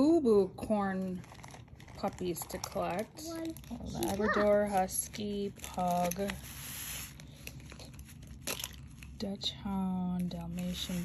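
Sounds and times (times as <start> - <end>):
paper leaflet crinkling: 1.0 - 9.2.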